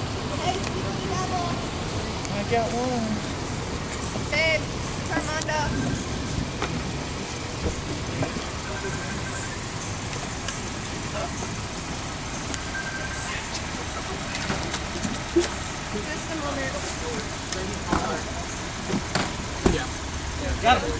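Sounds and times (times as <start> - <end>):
outdoor background noise: 0.0 - 20.9.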